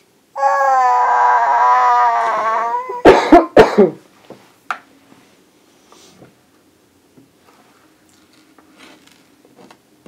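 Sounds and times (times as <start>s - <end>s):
toddler coughing: 2.9s - 4.0s.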